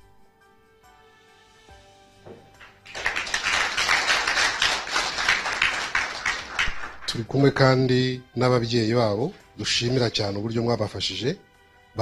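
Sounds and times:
audience applause: 0:02.6 - 0:07.1.

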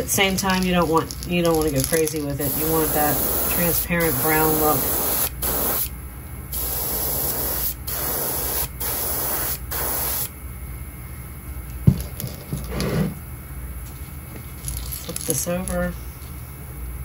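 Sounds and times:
airbrush spraying: 0:02.4 - 0:05.9, 0:06.5 - 0:10.3.

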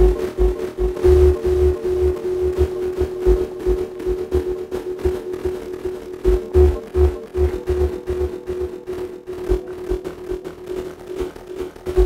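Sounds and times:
pulsing synth note: 0:00.0 - 0:10.8.

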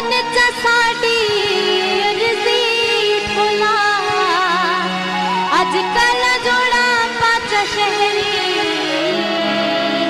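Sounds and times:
woman singing folk song: 0:00.0 - 0:04.8, 0:05.5 - 0:10.0.

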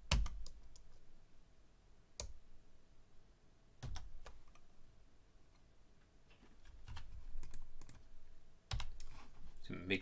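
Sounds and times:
computer keyboard keystrokes: 0:00.1 - 0:00.8, 0:03.8 - 0:04.6, 0:06.8 - 0:08.0, 0:08.7 - 0:09.1.

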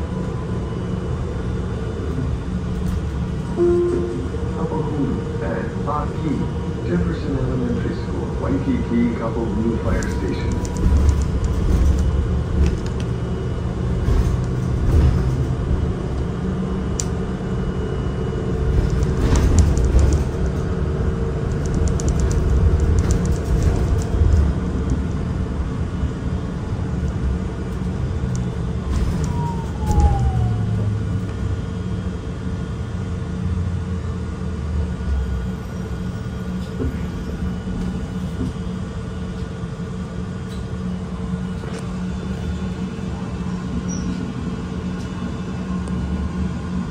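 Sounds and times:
bus interior rumble: 0:00.0 - 0:46.9
falling whine: 0:03.5 - 0:05.3, 0:28.7 - 0:31.3.

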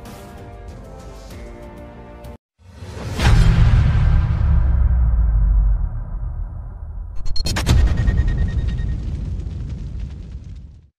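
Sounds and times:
low boom rumble with crackle: 0:03.2 - 0:10.9.

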